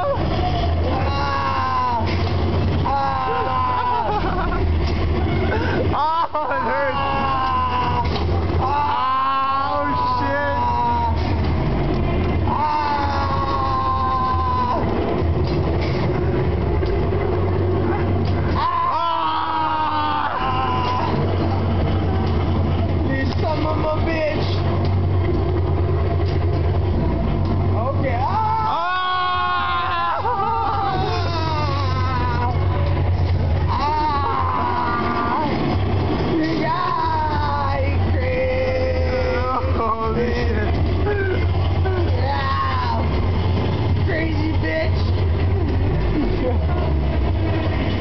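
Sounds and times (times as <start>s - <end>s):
steady low rumble: 0.0s - 48.0s.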